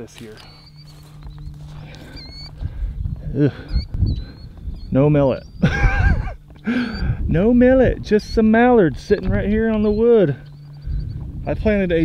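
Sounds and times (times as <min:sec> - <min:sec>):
birds chirping high: 0:00.0 - 0:12.0
low rumble: 0:00.4 - 0:12.0.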